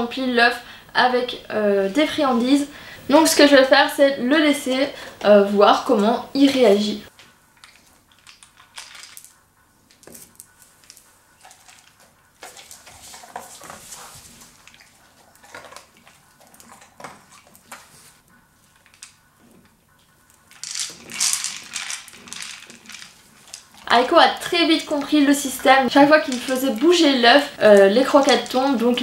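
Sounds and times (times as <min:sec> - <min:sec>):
kibble rattling inside toy: 0:07.6 - 0:09.4, 0:20.4 - 0:29.0
kibble clicking on tiles: 0:07.6 - 0:13.5, 0:18.7 - 0:19.2, 0:20.3 - 0:27.0, 0:27.8 - 0:29.0.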